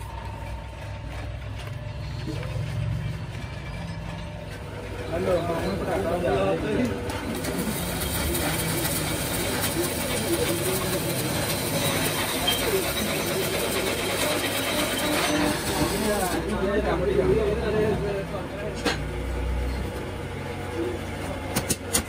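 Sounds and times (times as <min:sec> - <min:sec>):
welding arc crackle: 0:07.0 - 0:16.5.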